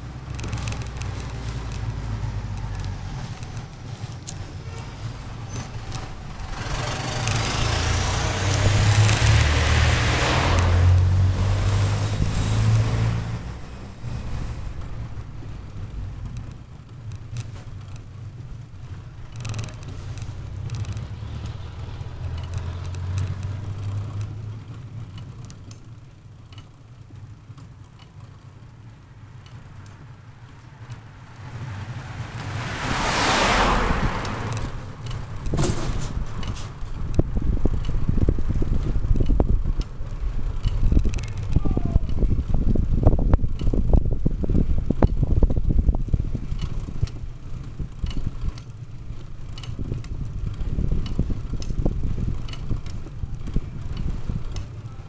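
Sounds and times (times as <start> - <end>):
wind buffeting: 0.0 - 24.7, 31.0 - 54.9
bicycle tyre rumble on asphalt: 0.0 - 55.0.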